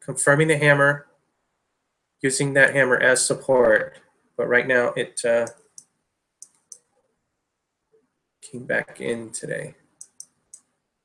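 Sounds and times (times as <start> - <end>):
computer mouse clicks: 5.4 - 6.9, 10.0 - 10.7.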